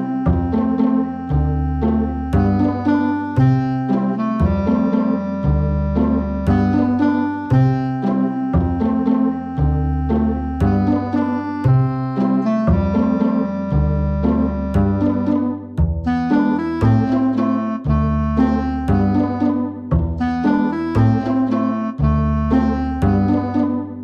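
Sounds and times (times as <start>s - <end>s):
upbeat piano music with bass: 0.0s - 24.0s.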